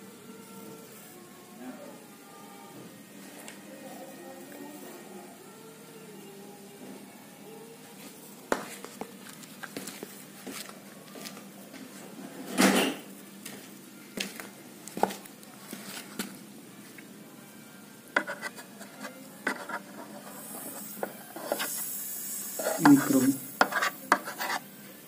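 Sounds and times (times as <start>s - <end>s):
high hiss: 21.6s - 23.6s.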